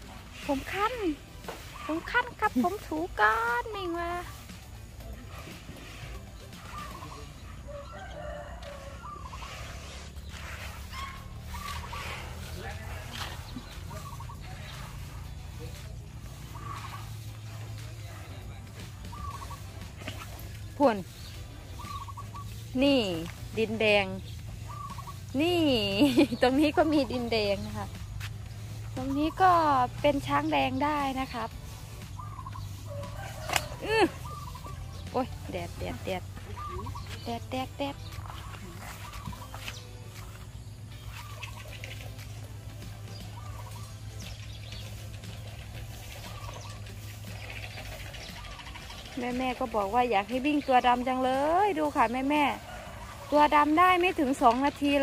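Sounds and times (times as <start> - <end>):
chickens clucking and crowing: 0.0 - 55.0.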